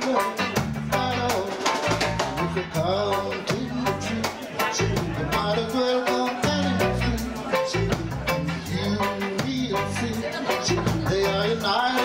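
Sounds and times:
live reggae band playing: 0.0s - 12.0s.

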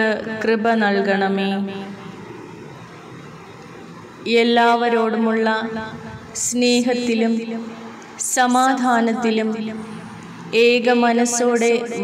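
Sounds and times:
faint background hiss and hum: 0.0s - 12.0s.

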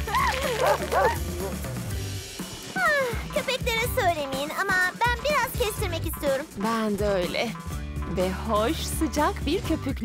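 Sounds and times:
cartoon puppies yapping: 0.0s - 1.6s
bouncy background music: 0.0s - 10.0s.

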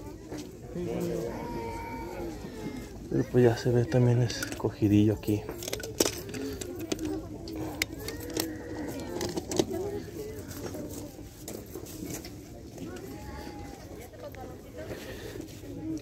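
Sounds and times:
background voices: 0.0s - 16.0s
toy cars clinking: 3.5s - 10.7s.

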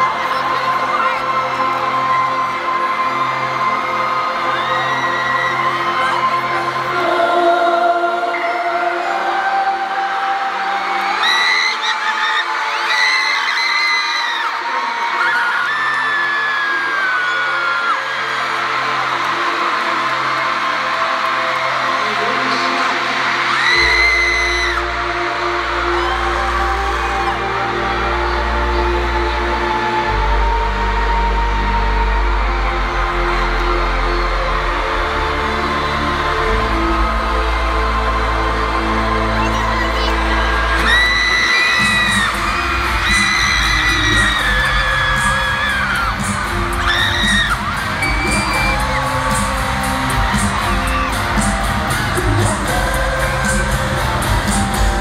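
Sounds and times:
crowd screaming: 0.0s - 55.0s
live concert music: 0.0s - 55.0s.

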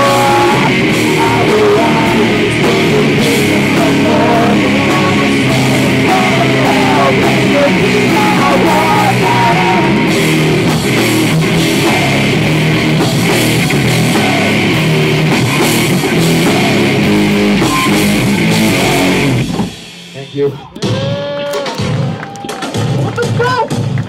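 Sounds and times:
person singing: 0.0s - 10.2s, 16.2s - 19.3s
electric guitar: 0.0s - 22.8s
drums: 0.0s - 24.0s.

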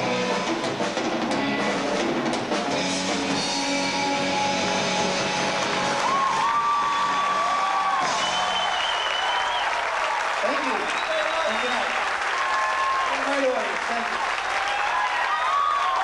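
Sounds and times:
audience applauding and cheering: 4.5s - 16.0s.

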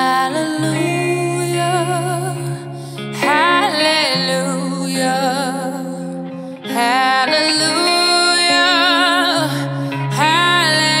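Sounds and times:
soft guitar accompaniment: 0.0s - 11.0s
woman singing a slow ballad: 0.0s - 11.0s.

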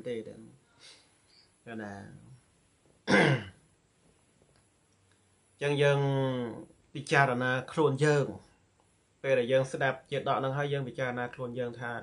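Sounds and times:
man speaking: 0.0s - 0.6s, 1.6s - 2.4s, 5.6s - 8.5s, 9.2s - 12.0s
man clearing his throat: 3.0s - 3.6s.

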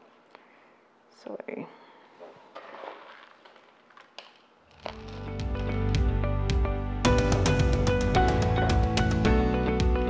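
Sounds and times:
potting mix rustling: 2.3s - 5.9s
background music: 4.8s - 10.0s.

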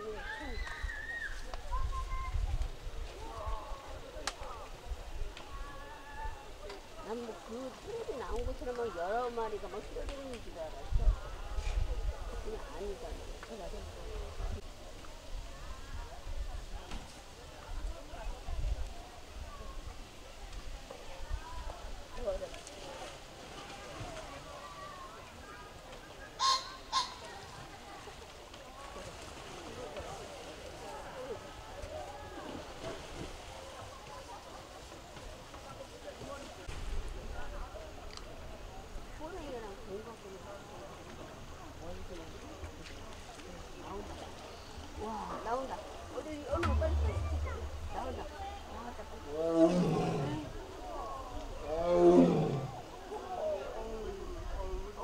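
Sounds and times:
faint crowd chatter: 0.0s - 55.0s
tiger roaring: 49.4s - 50.5s, 51.7s - 52.8s.

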